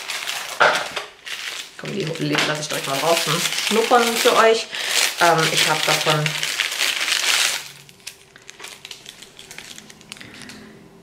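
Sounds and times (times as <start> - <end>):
plastic packaging rustling: 0.0 - 10.8.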